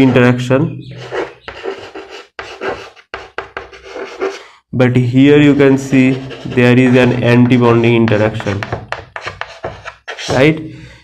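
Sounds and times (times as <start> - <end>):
chalk scratching on blackboard: 0.9 - 4.4, 5.4 - 10.4.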